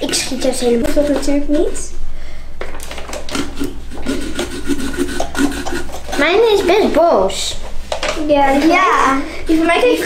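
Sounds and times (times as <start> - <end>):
small saw sawing pumpkin: 3.3 - 6.8.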